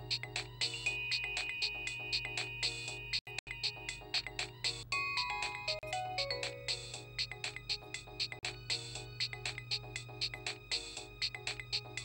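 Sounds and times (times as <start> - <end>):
musical phone ringtone: 0.0 - 12.0.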